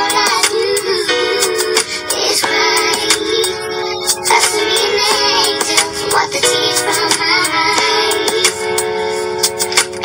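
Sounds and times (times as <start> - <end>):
woman singing: 0.0 - 8.7.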